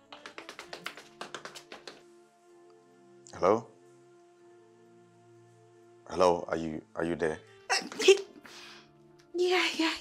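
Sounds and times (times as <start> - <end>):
rapid sharp taps: 0.0 - 2.1
soft background music: 0.0 - 10.0.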